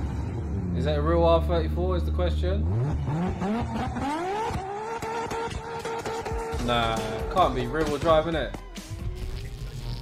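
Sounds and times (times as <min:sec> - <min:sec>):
car engine revving hard: 0:02.6 - 0:07.5.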